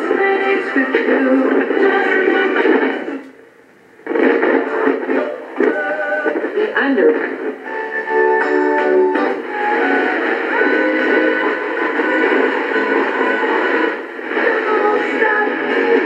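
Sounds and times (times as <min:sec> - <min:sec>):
radio tuning across stations: 0:00.0 - 0:03.3, 0:04.0 - 0:16.0
music from radio: 0:00.0 - 0:16.0.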